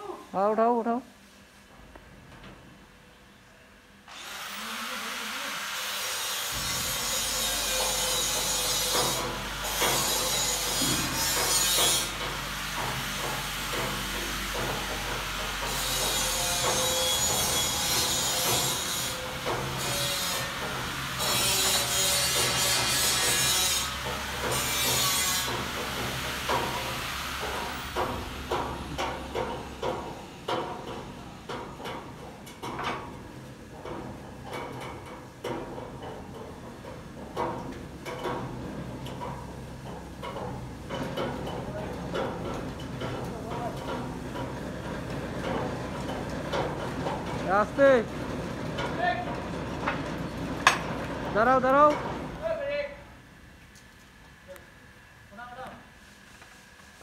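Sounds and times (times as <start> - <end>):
hydraulic power unit humming: 4.0 - 55.4
loud hydraulic hiss: 4.1 - 14.4
sharp clicks and knocks: 24.0 - 52.3.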